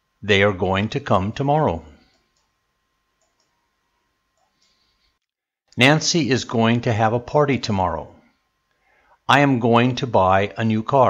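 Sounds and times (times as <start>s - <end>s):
very faint clicks: 3.2s - 3.6s.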